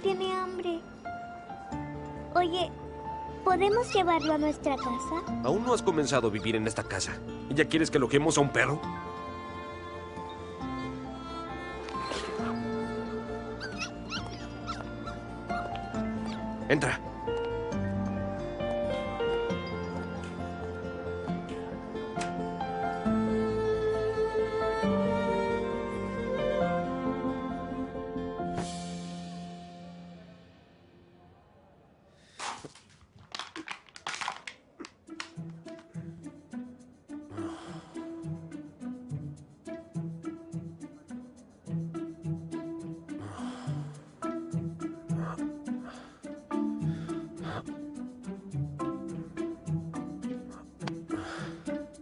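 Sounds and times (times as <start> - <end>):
soft background music: 0.0 - 31.3, 35.0 - 52.0
puppy crying: 3.7 - 5.3, 13.6 - 16.5
plastic wrappers crinkling: 32.4 - 35.3.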